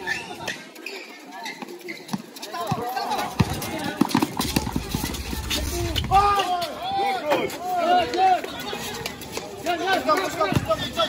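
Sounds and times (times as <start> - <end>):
players' footsteps: 0.0 - 11.0
spectators talking: 0.0 - 11.0
basketball bouncing on concrete: 2.1 - 6.2, 10.4 - 10.9.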